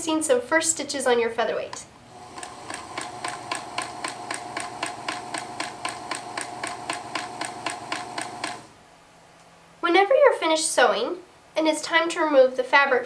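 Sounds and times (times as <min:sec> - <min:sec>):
sewing machine stitching: 0:02.1 - 0:08.7.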